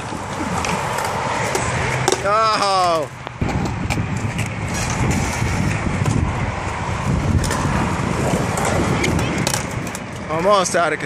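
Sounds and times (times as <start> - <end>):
skateboard wheels rolling on concrete: 0.0 - 11.0
skateboard clacks: 8.5 - 10.2.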